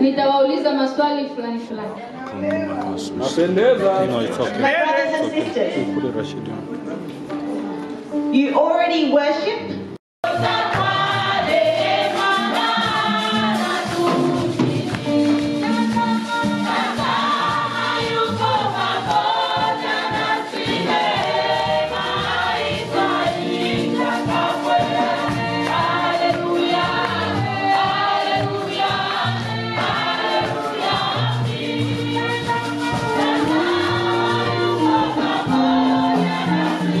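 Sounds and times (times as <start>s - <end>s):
gospel choir singing: 2.9s - 7.8s, 10.2s - 37.0s.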